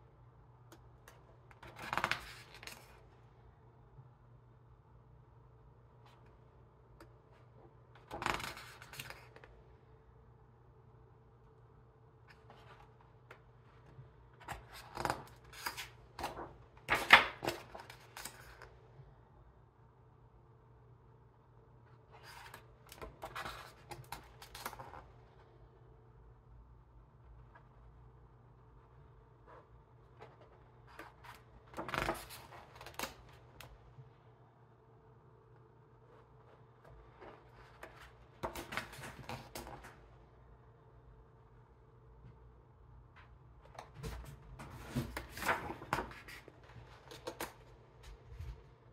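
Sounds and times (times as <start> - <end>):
book pages turning: 1.1 - 3.0, 7.4 - 9.5, 12.3 - 18.7, 22.0 - 25.1, 29.6 - 33.7, 36.1 - 40.0, 43.7 - 48.6.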